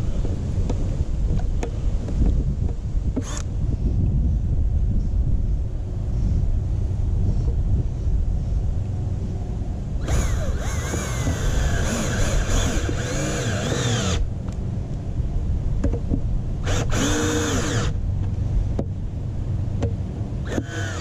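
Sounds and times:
steady low rumble: 0.0 - 21.0
cordless drill driving screws: 10.0 - 14.2, 16.6 - 18.0, 20.5 - 21.0.

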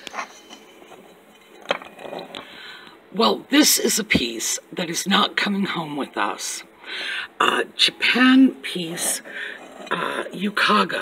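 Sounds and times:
shop background noise: 0.0 - 11.0.

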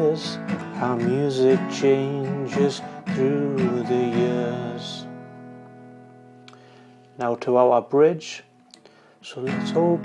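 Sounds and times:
man singing: 0.0 - 5.2, 9.2 - 10.0
acoustic guitar chord ringing: 0.0 - 10.0.

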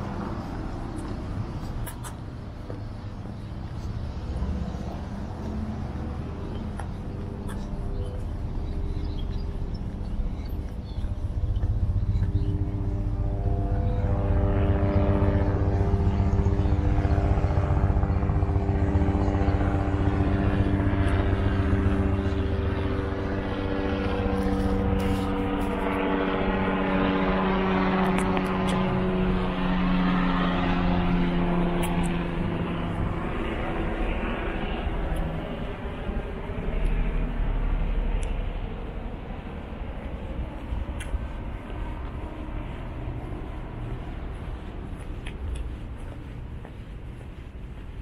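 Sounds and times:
aircraft engine droning overhead: 0.0 - 48.0.

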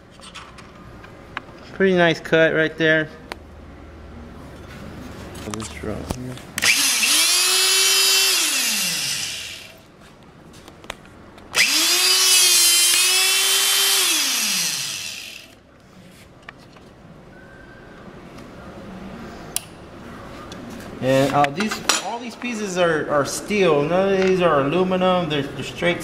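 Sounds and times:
hydraulic hole punch motor whine: 6.6 - 9.7, 11.5 - 15.6.

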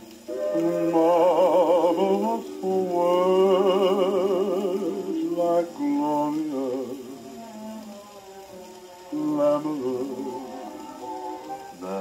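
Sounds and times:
person singing: 0.0 - 12.0
record surface hiss: 0.0 - 12.0
soft orchestral accompaniment: 0.0 - 12.0.

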